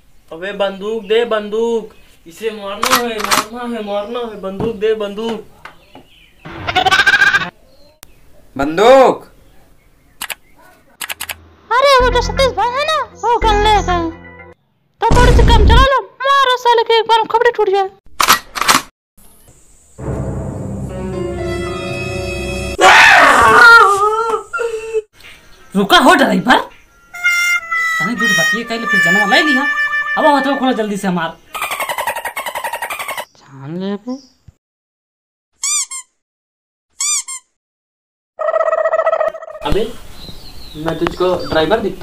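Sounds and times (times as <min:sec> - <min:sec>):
background music: 0:12.0 - 0:14.6, 0:20.0 - 0:22.8, 0:25.7 - 0:31.0
man's wailing cry: 0:22.8 - 0:25.0.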